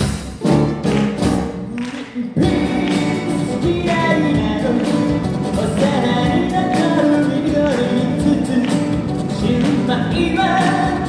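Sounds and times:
live pop band with guitars: 0:00.0 - 0:11.0.

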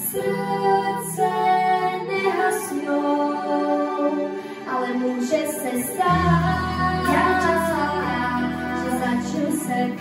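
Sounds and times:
girls singing together: 0:00.0 - 0:10.0.

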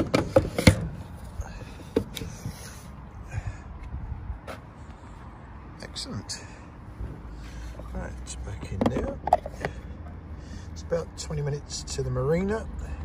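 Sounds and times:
hard plastic clunks and knocks: 0:00.0 - 0:01.0, 0:01.9 - 0:02.3, 0:08.6 - 0:09.8.

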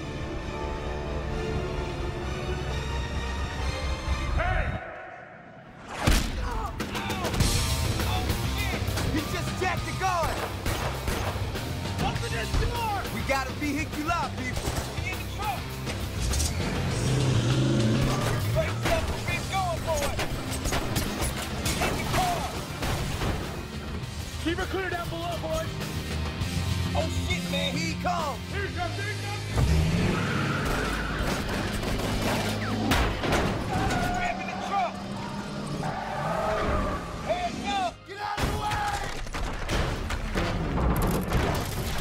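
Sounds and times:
dramatic music score: 0:00.0 - 0:42.0
tyres skidding and squealing: 0:05.8 - 0:26.0, 0:28.8 - 0:38.1
heavy truck engine: 0:15.6 - 0:24.2
heavy vehicle engine revving: 0:16.0 - 0:19.3.

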